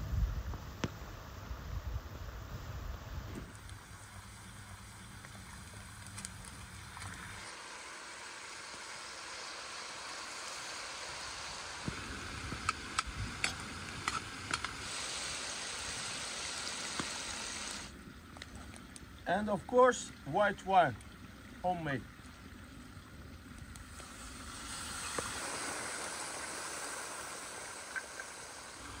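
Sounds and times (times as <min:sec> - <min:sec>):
food sizzling in hot fat: 0:07.3 - 0:17.9, 0:23.9 - 0:29.0
sharp pops and crackles: 0:11.8 - 0:14.9, 0:16.8 - 0:17.4.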